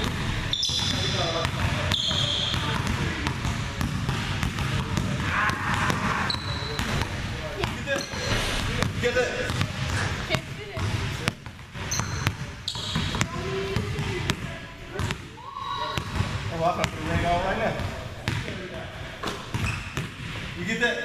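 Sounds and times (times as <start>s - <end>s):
basketball bouncing on wooden floor: 0.0s - 15.2s, 19.2s - 20.5s
sneakers squeaking on floor: 0.0s - 17.0s, 19.2s - 20.6s.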